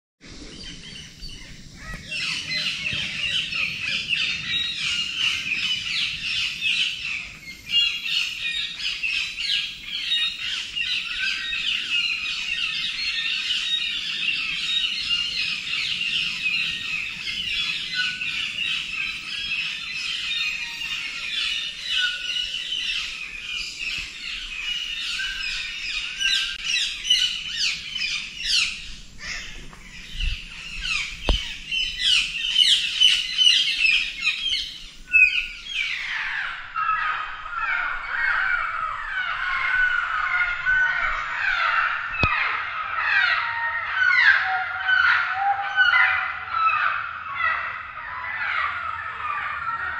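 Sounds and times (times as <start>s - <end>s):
tropical birds chirping: 0.2s - 49.9s.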